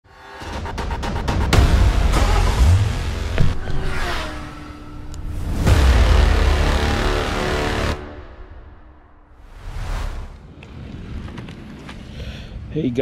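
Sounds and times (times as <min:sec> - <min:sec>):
produced intro music: 0:00.1 - 0:04.2, 0:04.8 - 0:10.4.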